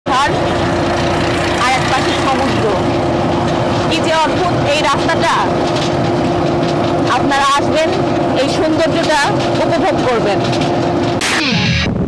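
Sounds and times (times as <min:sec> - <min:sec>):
road vehicle rumbling: 0:00.0 - 0:12.0
people's voices: 0:01.4 - 0:03.0, 0:03.7 - 0:05.6, 0:07.0 - 0:10.6.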